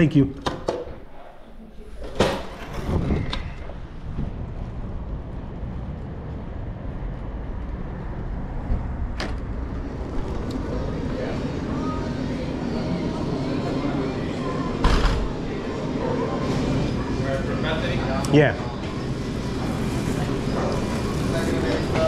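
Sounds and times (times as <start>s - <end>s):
steady low rumble: 2.9s - 12.7s.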